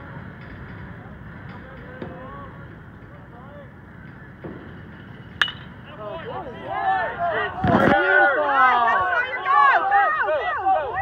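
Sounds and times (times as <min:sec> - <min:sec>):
low rumble of wind: 0:00.0 - 0:11.0
voices calling out: 0:01.0 - 0:11.0.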